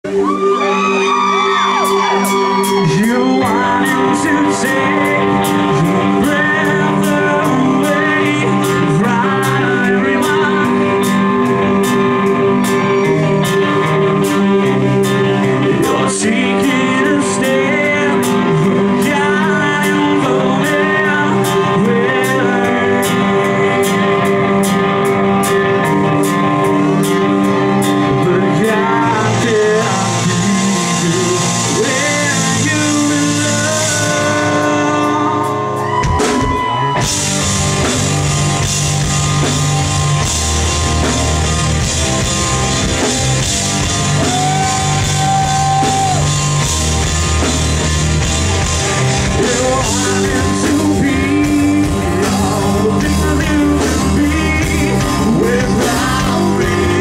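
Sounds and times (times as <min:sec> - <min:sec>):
live rock band playing: 0:00.0 - 0:57.0.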